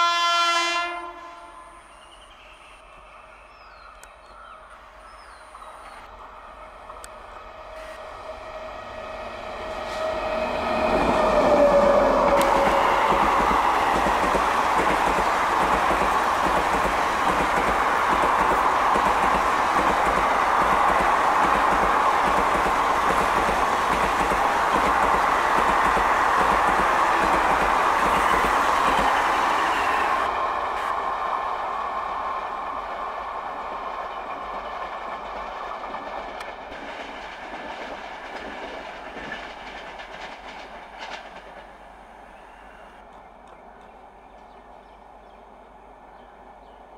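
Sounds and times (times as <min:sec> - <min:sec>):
train rumble: 0:02.8 - 0:46.9
train wheels rushing on rail: 0:02.8 - 0:46.9
coaches clickety-clack: 0:12.3 - 0:29.2, 0:34.5 - 0:41.7.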